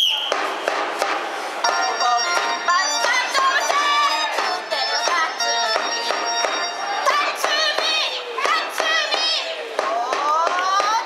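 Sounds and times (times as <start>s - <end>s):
high whistle blast: 0.0s - 0.7s
sharp drum strokes: 0.2s - 9.1s
keyboard and drum cheering music: 1.6s - 9.0s.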